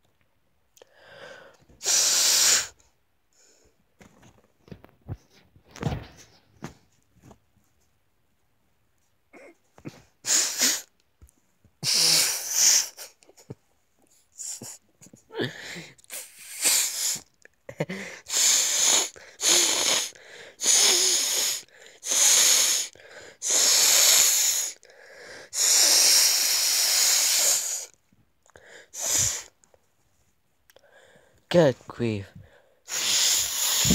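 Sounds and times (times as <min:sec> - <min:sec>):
person wheezing breaths: 0:14.4 - 0:27.9, 0:32.4 - 0:33.9.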